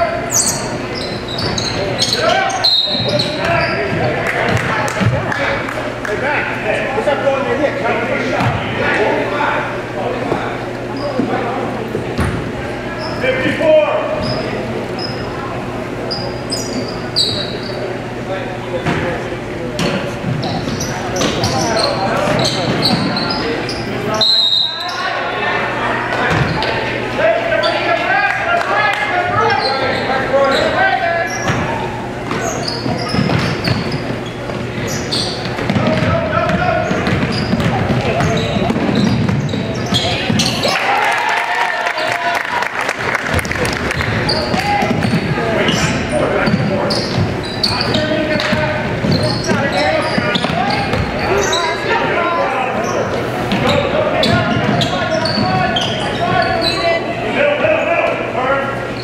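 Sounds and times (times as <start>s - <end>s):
sneaker squeaks: 0.0s - 5.3s, 10.2s - 28.1s, 29.2s - 40.8s, 43.3s - 59.0s
basketball bouncing on wooden floor: 26.3s - 26.6s, 32.3s - 34.6s, 35.4s - 40.6s, 43.3s - 45.8s, 48.4s - 51.1s.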